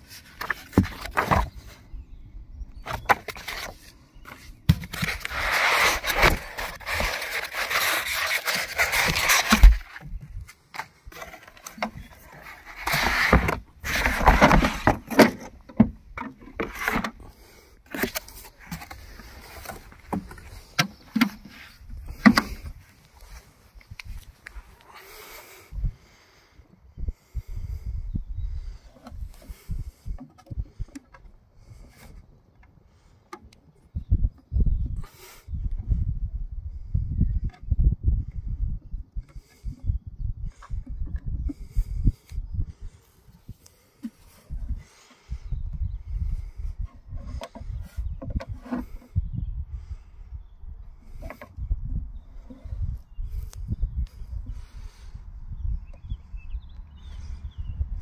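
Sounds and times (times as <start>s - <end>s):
microphone handling clicks: 2.8s - 24.6s
wind buffeting microphone: 18.7s - 32.2s, 33.9s - 58.0s.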